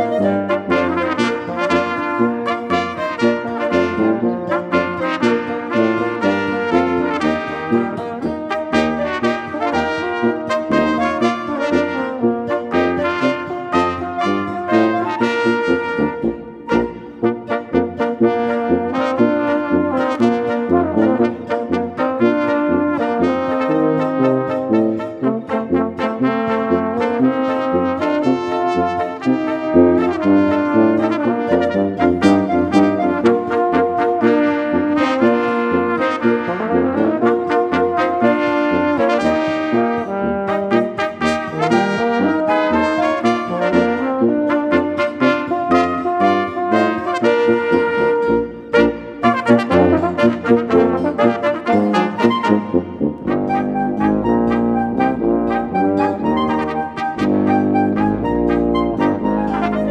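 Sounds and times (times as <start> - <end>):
wind quintet playing polka: 0.0 - 59.9.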